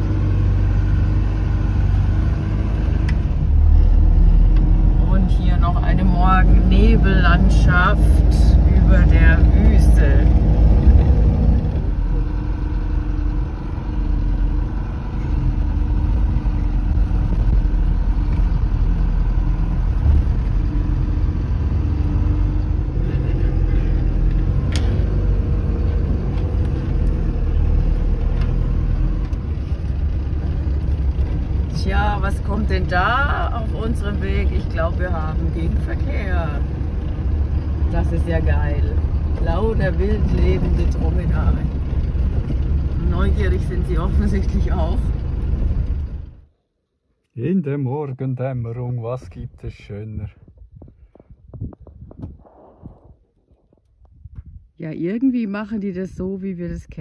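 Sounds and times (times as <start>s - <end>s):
truck diesel engine droning: 0.0s - 46.6s.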